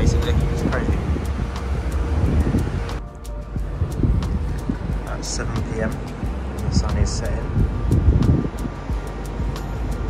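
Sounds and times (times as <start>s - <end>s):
faint background music: 0.0s - 10.0s
street noise: 0.0s - 10.0s
wind rumbling on microphone: 0.0s - 10.0s.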